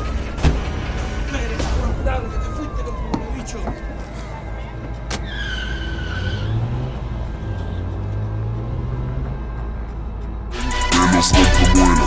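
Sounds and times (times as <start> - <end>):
background music: 0.0 - 12.0
car engine humming: 0.0 - 12.0
tyres squealing: 5.1 - 8.1.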